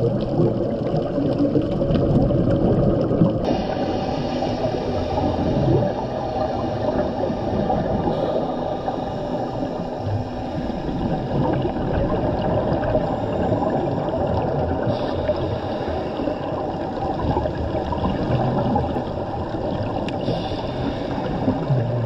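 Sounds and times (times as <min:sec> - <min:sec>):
muffled underwater rush: 0:00.0 - 0:22.0.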